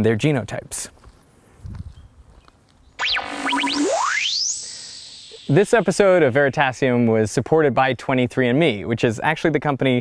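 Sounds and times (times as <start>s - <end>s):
synthesized logo sting: 3.0s - 6.0s.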